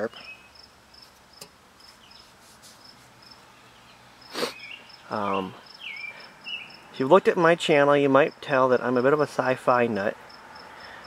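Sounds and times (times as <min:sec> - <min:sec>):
faint insect chirping: 0:00.0 - 0:07.1, 0:10.0 - 0:11.0.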